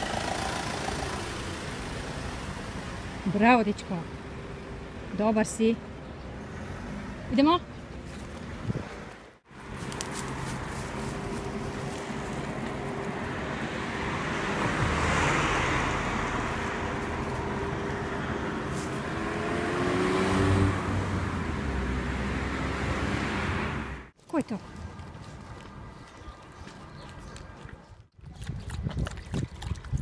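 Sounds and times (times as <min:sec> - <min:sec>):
vehicles passing close by: 0:00.0 - 0:28.1.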